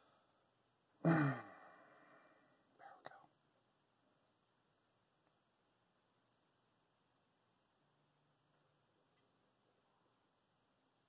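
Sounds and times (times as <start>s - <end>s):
man clearing his throat: 1.0s - 1.7s.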